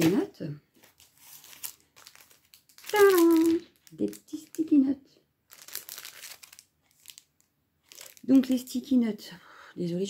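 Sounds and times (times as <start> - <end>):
paper pad rustling and crinkling: 0.0 - 4.6, 5.5 - 7.2, 7.9 - 8.2.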